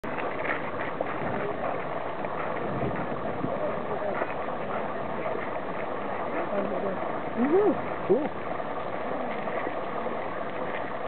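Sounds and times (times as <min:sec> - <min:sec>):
steady background noise: 0:00.0 - 0:11.0
crowd chatter: 0:00.4 - 0:10.8.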